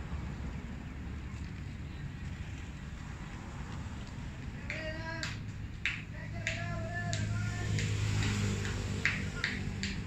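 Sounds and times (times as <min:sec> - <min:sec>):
sharp hand claps: 0:04.6 - 0:10.0.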